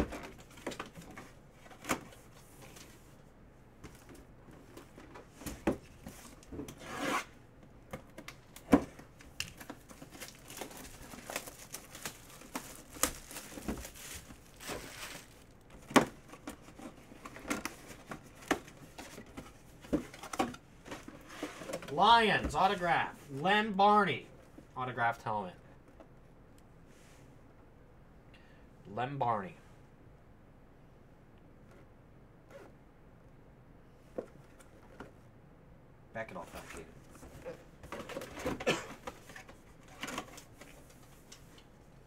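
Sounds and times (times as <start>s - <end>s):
cardboard packaging rustling and tearing: 9.2s - 22.0s.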